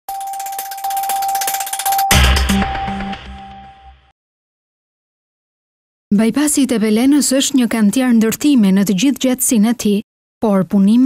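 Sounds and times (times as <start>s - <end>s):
rapid shimmering ticking: 0.1s - 2.6s
sustained high electronic tone: 0.1s - 4.1s
deep electronic hit: 2.1s - 4.1s.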